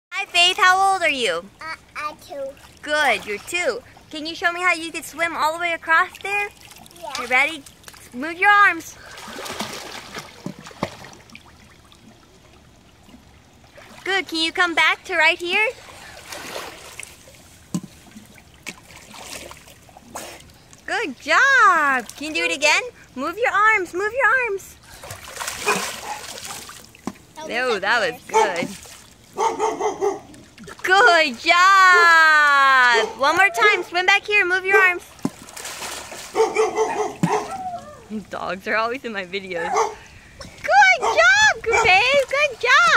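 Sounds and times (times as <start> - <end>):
water splashing: 0.1 - 42.9
dog yapping: 25.6 - 26.6, 29.4 - 30.3, 36.3 - 38.0, 39.6 - 40.0
dog whining: 36.4 - 38.1.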